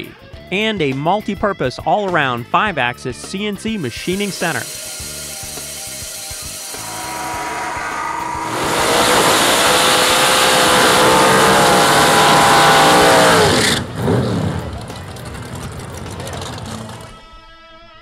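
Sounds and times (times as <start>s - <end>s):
tyres hissing: 3.2s - 13.9s
racing car engine revving: 6.8s - 17.2s.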